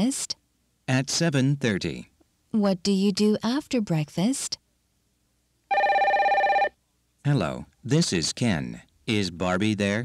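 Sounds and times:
electronic telephone ring: 5.7 - 6.8.

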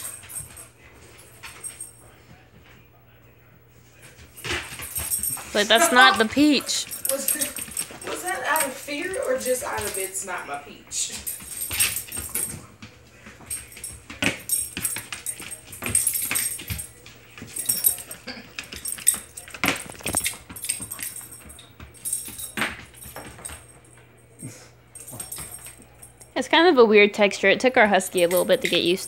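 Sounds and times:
collar tags jingling: 0.0 - 2.2, 3.9 - 26.7, 27.8 - 29.0.

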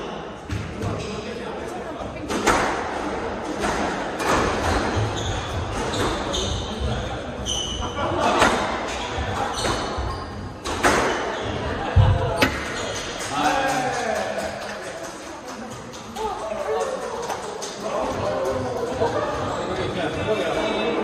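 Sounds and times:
racket hitting squash ball: 2.2 - 13.3
shoes squeaking on wooden floor: 4.7 - 8.0, 8.9 - 11.8.

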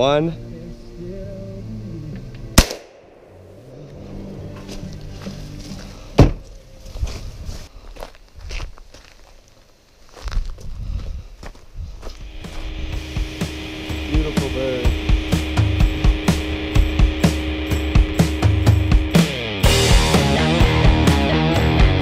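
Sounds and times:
footsteps on gravel: 3.8 - 16.5
rock music with drums and guitar: 12.2 - 22.0.

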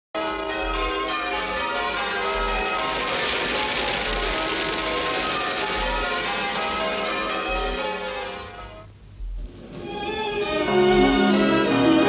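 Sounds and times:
church bells pealing: 0.2 - 8.9.

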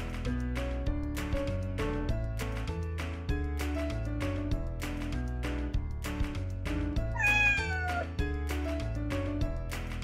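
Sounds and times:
background music: 0.0 - 10.0
cat meowing: 7.1 - 8.2.

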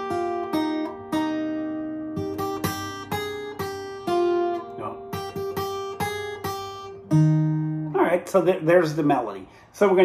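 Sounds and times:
fingerstyle acoustic guitar: 0.0 - 9.6.

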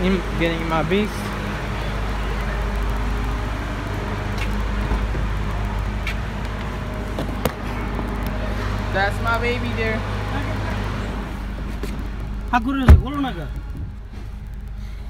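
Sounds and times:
car engine idling: 0.0 - 15.0.

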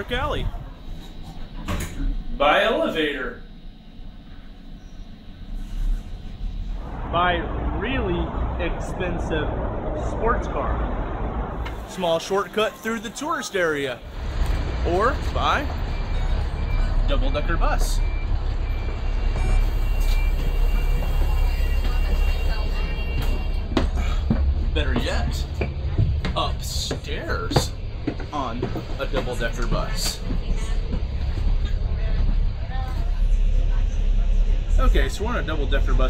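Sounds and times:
bus engine idling: 0.0 - 36.0
lift car rumbling: 0.0 - 36.0.

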